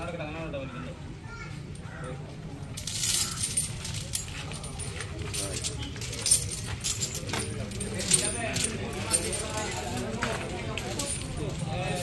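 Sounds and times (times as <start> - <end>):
chains clinking and jangling: 2.8 - 12.0.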